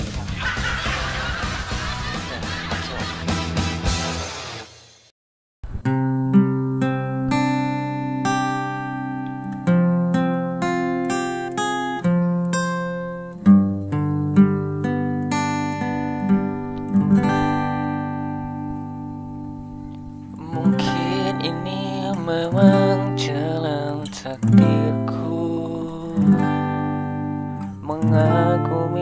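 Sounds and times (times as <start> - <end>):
acoustic guitar picking: 5.7 - 29.0
man singing: 20.4 - 26.9, 27.7 - 29.0.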